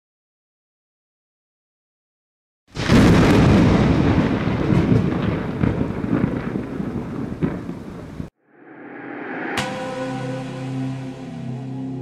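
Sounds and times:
thunder-like boom: 2.8s - 10.9s
rising tone: 8.4s - 12.0s.

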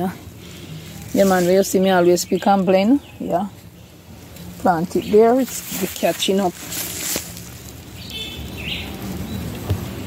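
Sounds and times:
outdoor background hiss: 0.0s - 10.0s
bird chirping: 0.6s - 6.9s, 7.9s - 9.7s.

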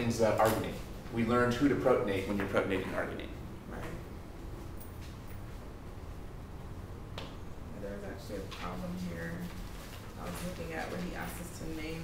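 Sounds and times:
man talking: 0.0s - 4.0s
low room hum: 0.0s - 12.0s.

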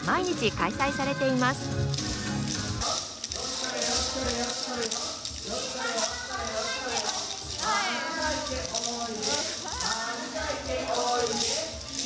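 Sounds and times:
dance music: 0.0s - 12.0s
wooden clappers clacking: 0.0s - 12.0s.

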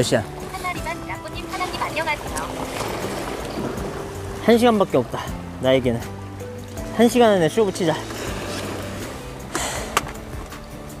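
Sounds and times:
sea waves washing against rocks: 0.0s - 11.0s
wind buffeting microphone: 0.0s - 11.0s.

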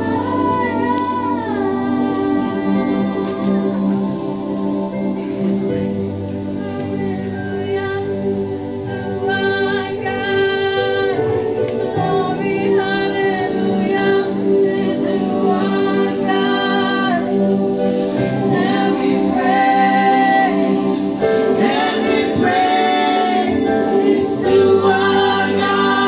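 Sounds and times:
group of voices singing: 0.0s - 26.0s.

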